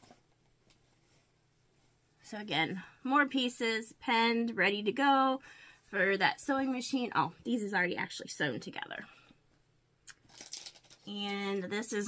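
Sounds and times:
soft rustle of cloth: 0.0 - 2.4.

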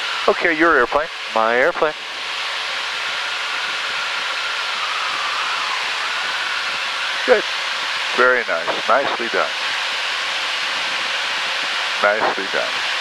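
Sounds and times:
faint wavering whine: 0.0 - 13.0
jet cockpit rushing hiss: 0.0 - 13.0.

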